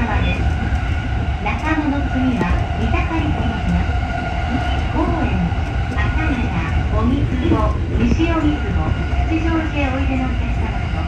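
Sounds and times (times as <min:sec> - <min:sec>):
announcement voice: 0:00.0 - 0:00.4
train running rumble: 0:00.0 - 0:11.0.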